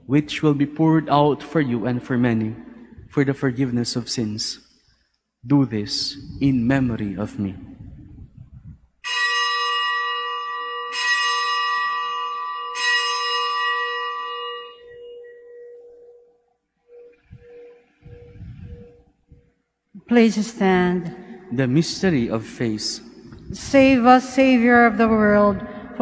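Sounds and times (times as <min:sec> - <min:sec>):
bell ringing: 0:09.1 - 0:19.0.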